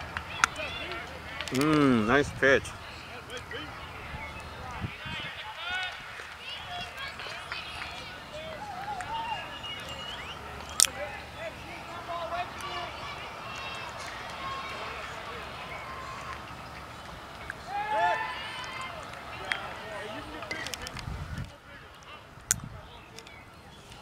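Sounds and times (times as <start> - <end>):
voices calling out: 0.0 - 24.0
loud rising shout: 17.6 - 19.0.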